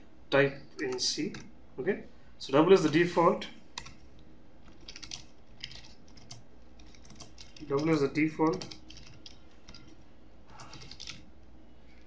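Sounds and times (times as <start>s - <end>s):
keyboard typing: 3.7s - 4.0s, 4.6s - 11.3s.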